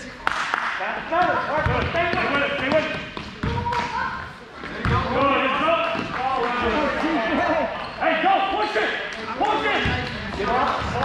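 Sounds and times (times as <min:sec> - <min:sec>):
voices of players and spectators: 0:00.0 - 0:11.0
basketball bouncing on wooden floor: 0:01.2 - 0:04.1, 0:04.7 - 0:05.3, 0:09.8 - 0:11.0.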